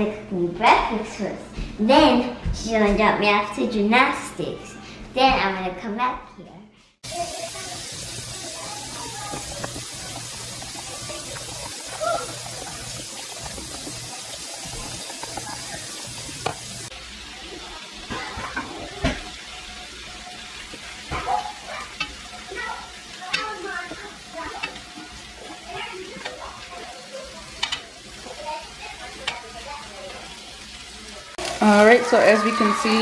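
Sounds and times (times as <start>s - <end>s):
griddle sizzling faintly: 7.0s - 33.0s
utensils clinking and knocking: 27.5s - 28.0s.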